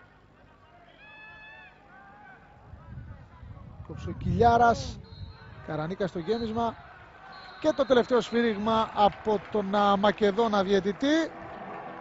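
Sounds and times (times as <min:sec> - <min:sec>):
crowd calls: 0:06.1 - 0:12.0.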